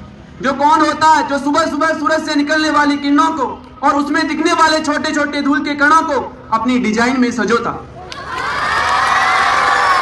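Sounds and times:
children cheering and shouting: 8.0s - 10.0s.

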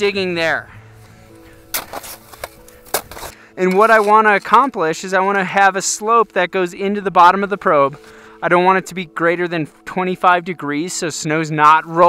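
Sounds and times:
quiet background music: 0.0s - 12.0s
shovel chopping into packed snow: 1.7s - 4.2s.

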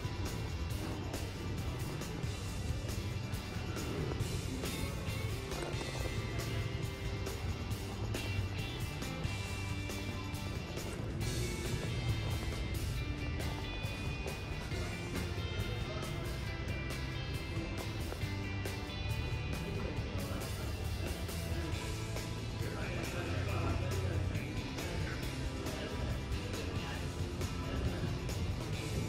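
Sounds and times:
background music: 0.0s - 29.0s.

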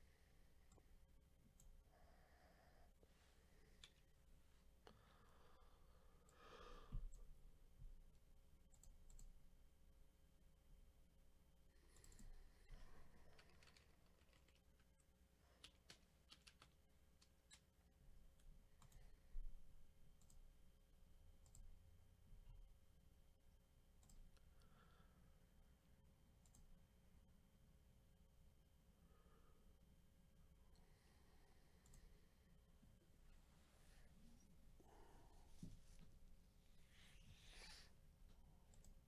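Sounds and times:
faint clicks and taps: 11.9s - 20.5s.

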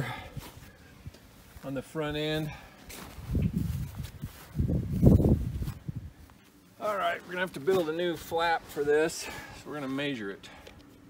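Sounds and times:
low rumbling on microphone: 3.1s - 6.3s.

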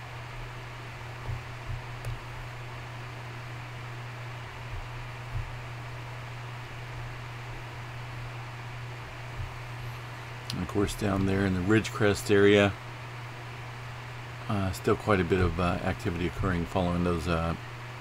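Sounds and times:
low hum: 0.0s - 18.0s
room noise hiss: 0.0s - 18.0s.

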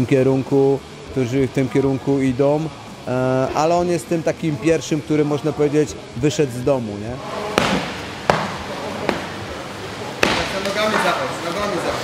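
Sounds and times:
sharp smacks of strikes: 7.6s - 9.4s, 10.2s - 10.8s.

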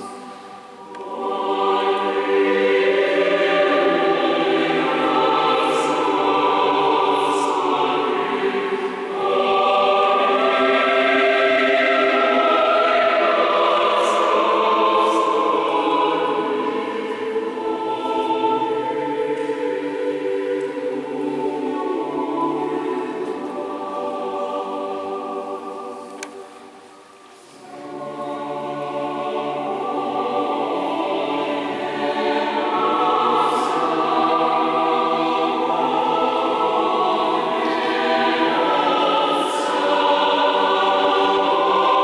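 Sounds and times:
mixed choir singing: 0.0s - 42.0s.

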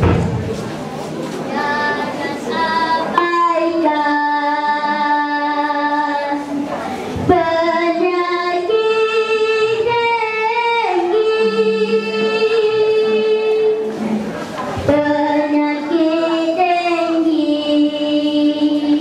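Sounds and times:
child singing: 1.5s - 13.8s, 14.8s - 19.0s.

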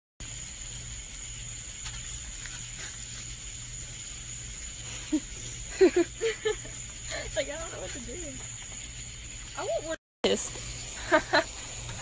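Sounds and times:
background hiss and hum: 0.2s - 12.0s
woman laughing: 5.0s - 7.4s, 11.0s - 11.6s.

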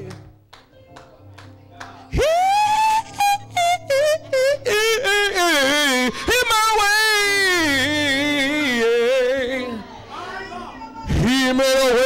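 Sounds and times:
man singing gospel into microphone: 2.1s - 12.0s.

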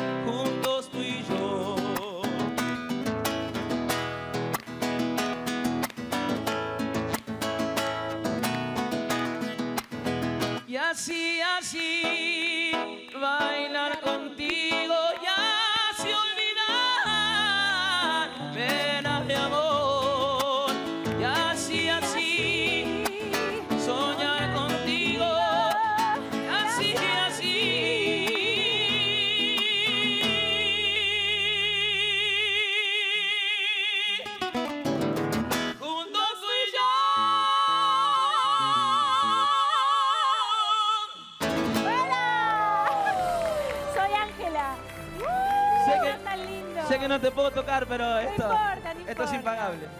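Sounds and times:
man singing with vibrato: 0.0s - 2.7s, 10.6s - 34.6s, 35.7s - 42.0s
strummed acoustic guitar: 0.0s - 32.6s, 33.9s - 36.0s, 41.4s - 42.4s
woman singing: 0.2s - 2.4s, 10.7s - 34.3s, 35.8s - 43.1s.

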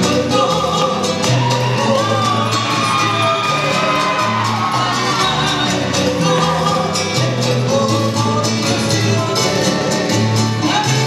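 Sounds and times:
live folk band with harp and guitars: 0.0s - 11.0s
crowd shouting and whooping: 0.8s - 7.0s.

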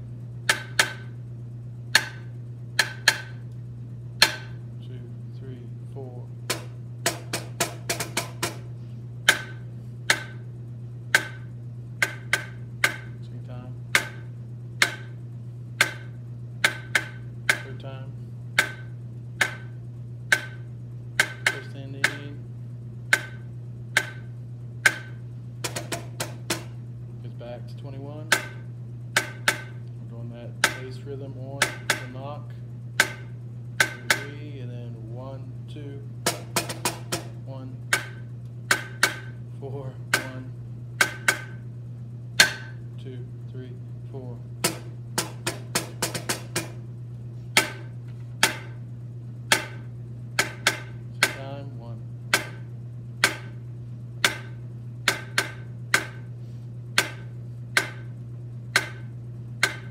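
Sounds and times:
steady low hum: 0.0s - 59.9s
drumsticks striking snare drum: 6.5s - 8.7s, 15.8s - 17.8s, 21.2s - 22.4s, 33.0s - 34.4s, 40.1s - 41.6s, 44.6s - 46.8s, 50.4s - 51.5s, 58.8s - 59.9s.

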